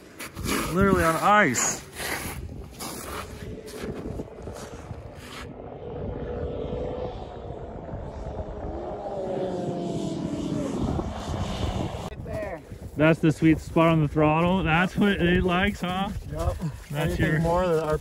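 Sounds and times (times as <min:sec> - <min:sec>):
footsteps crunching on snow: 0:00.0 - 0:05.5, 0:12.3 - 0:18.0
distant snowmobile engine: 0:00.0 - 0:18.0.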